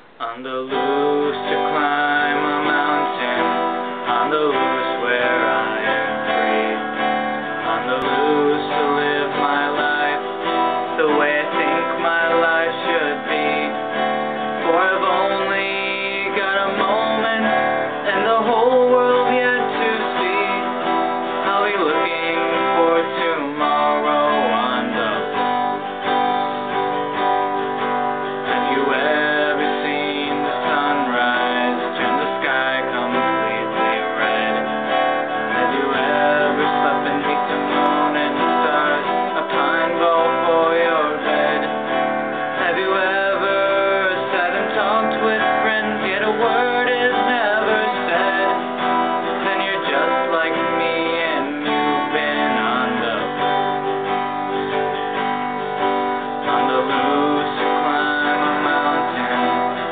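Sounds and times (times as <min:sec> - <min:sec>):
acoustic guitar strumming: 0:00.0 - 0:59.9
man singing: 0:00.0 - 0:59.9.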